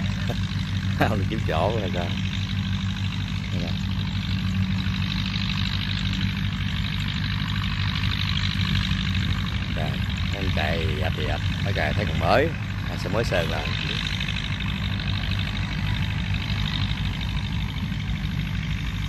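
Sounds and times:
tractor diesel engine running: 0.0s - 19.0s
faint voices: 9.7s - 18.6s.

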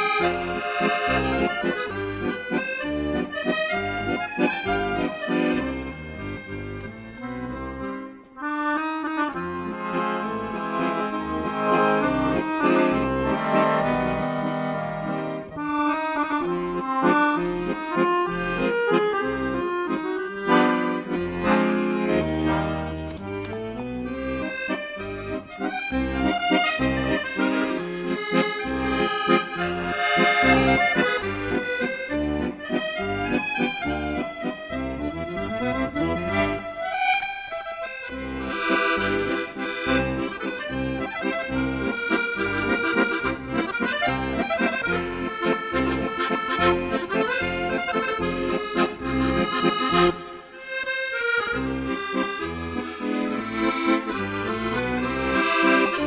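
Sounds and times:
accordion folk music: 0.0s - 56.0s
steady bass pulse: 28.7s - 36.7s.

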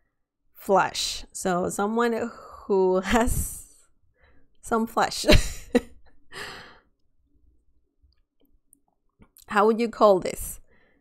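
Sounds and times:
woman's breathy exhale: 6.4s - 6.8s.

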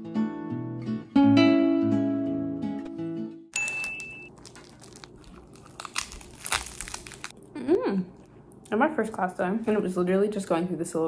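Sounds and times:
plastic wrapper crinkling: 3.6s - 7.4s
person humming: 7.5s - 8.2s.

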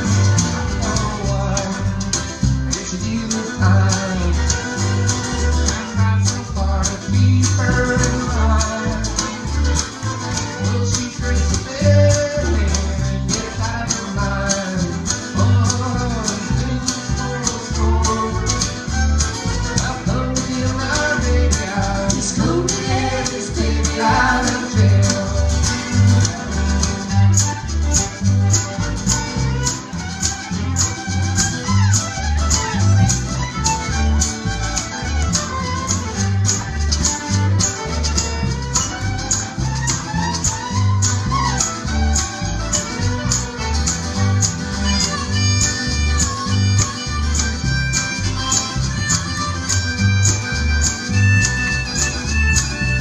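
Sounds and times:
fiddle: 0.0s - 53.0s
strummed acoustic guitar: 0.0s - 53.0s
upright bass: 0.0s - 53.0s.

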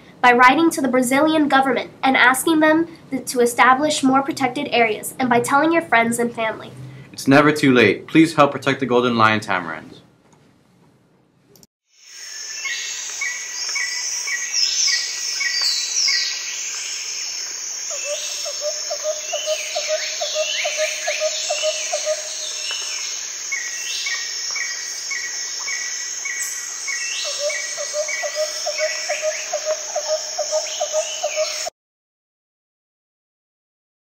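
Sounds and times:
high insect drone: 11.9s - 31.7s
bird calls: 12.4s - 31.7s.

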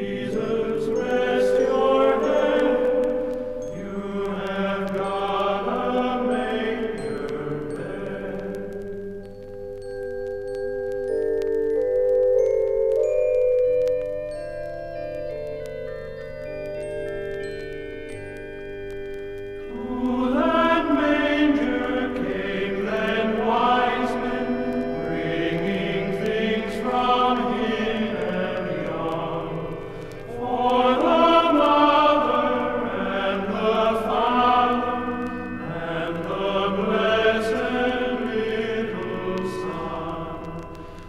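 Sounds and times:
choir singing a carol: 0.0s - 8.9s, 19.7s - 41.0s.

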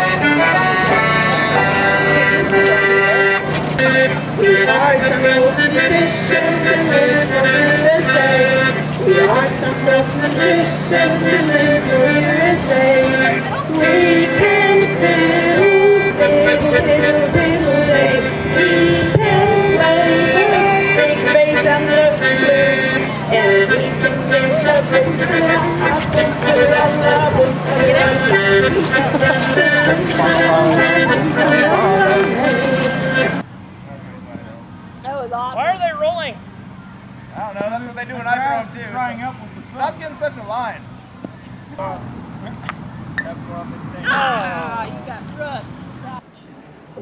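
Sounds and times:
folk dance music with accordion and fiddle: 0.0s - 33.5s
people's voices: 0.0s - 47.0s.

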